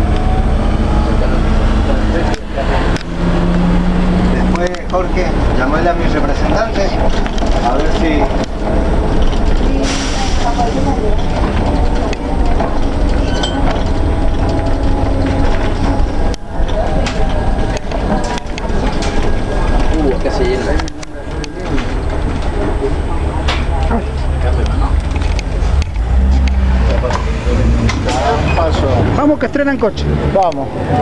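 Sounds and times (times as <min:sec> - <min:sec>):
passengers chattering: 0:00.0 - 0:31.0
trolleybus cabin rumble: 0:00.0 - 0:31.0.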